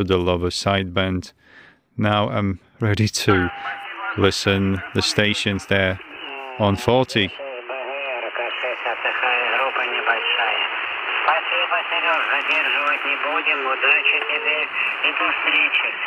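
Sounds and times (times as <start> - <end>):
narrow radio voice: 2.0 - 16.0
radio band noise hiss: 3.1 - 16.0.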